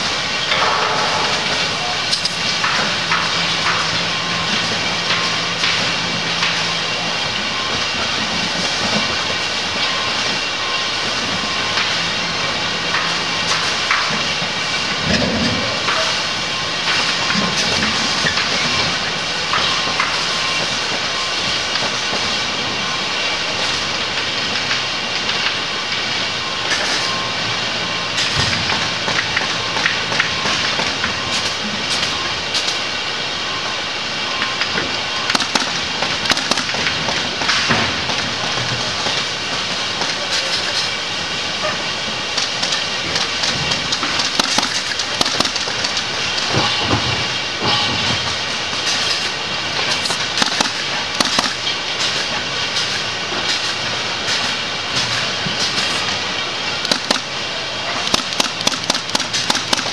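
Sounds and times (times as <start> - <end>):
factory machinery noise: 0.0 - 59.9
pneumatic stapler clicks: 50.0 - 52.2, 56.9 - 57.3, 58.1 - 59.9.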